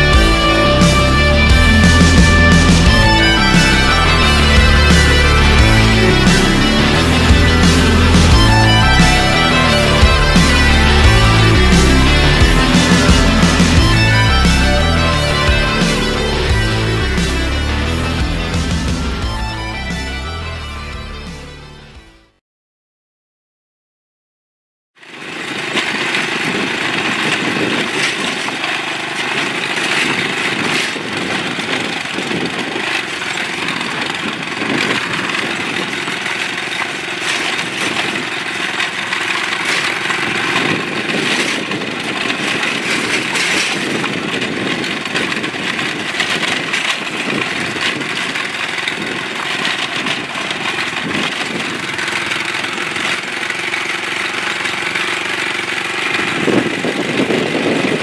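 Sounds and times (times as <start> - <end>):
tyres on gravel road: 0.0 - 22.2, 25.0 - 58.0
vehicle engine running: 0.0 - 22.4, 25.0 - 58.0.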